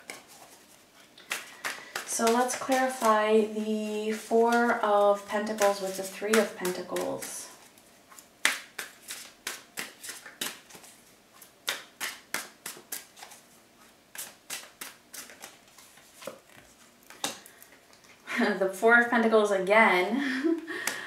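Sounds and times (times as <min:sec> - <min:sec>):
playing cards being shuffled: 0:00.0 - 0:13.5, 0:14.1 - 0:17.8.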